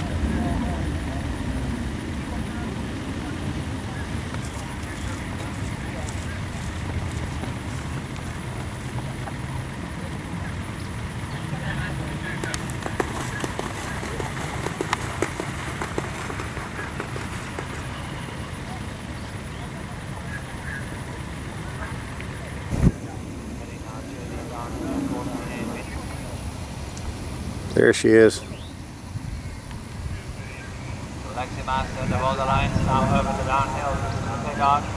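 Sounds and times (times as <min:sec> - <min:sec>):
indistinct voices: 0:00.0 - 0:34.9
sharp thump: 0:22.7 - 0:23.0.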